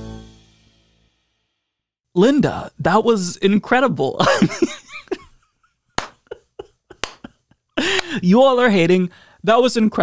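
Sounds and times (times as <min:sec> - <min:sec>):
man laughing quietly: 0:04.5 - 0:08.2.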